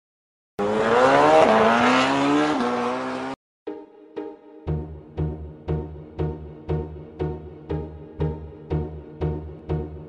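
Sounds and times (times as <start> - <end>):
engine revving: 0.6 - 3.4.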